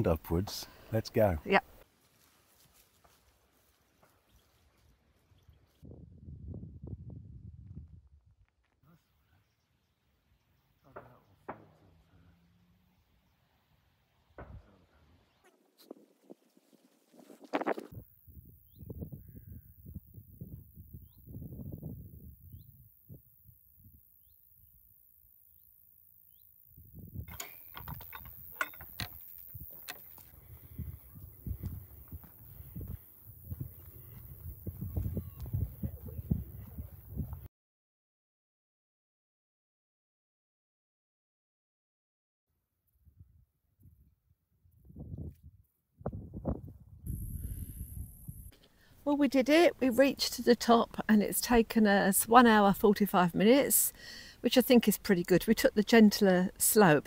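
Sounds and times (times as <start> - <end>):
wind rumbling on microphone: 5.2 - 8.5, 17.1 - 24.0, 26.8 - 37.5, 43.0 - 48.5.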